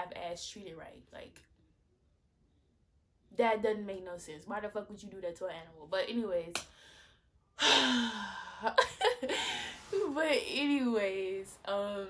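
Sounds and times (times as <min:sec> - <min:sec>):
woman sighing heavily: 0:07.6 - 0:08.7
woman laughing: 0:08.6 - 0:09.8.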